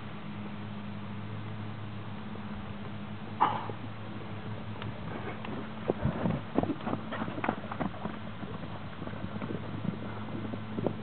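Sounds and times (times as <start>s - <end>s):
horse hoofbeats on dirt: 3.4s - 11.0s.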